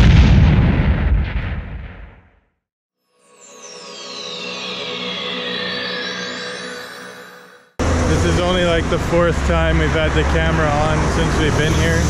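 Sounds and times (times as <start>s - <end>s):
loud explosion: 0.0s - 2.4s.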